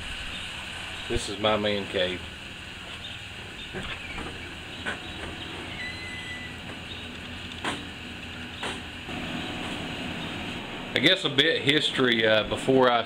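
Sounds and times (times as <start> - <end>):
low background hum: 0.1 - 13.0
door squeak: 3.8 - 6.8.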